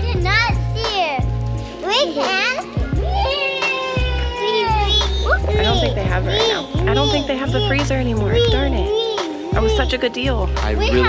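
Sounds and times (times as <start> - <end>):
young children's high voices: 0.0 - 9.9, 10.8 - 11.0
background music with bass line: 0.0 - 11.0.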